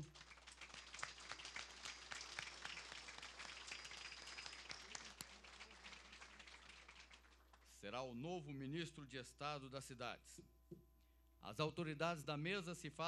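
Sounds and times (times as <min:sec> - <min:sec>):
audience applauding: 0:00.0 - 0:07.7.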